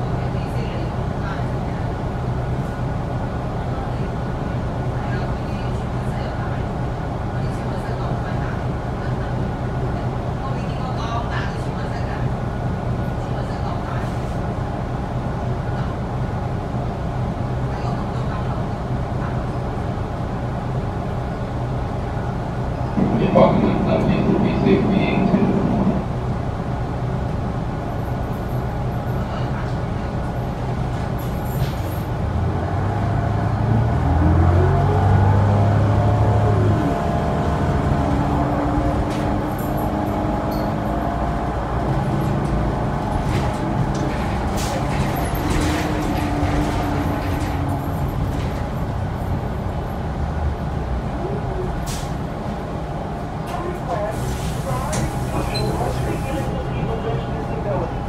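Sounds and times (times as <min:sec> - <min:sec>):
bus engine and drivetrain: 0:00.0 - 0:58.0
road rumble: 0:00.0 - 0:58.0.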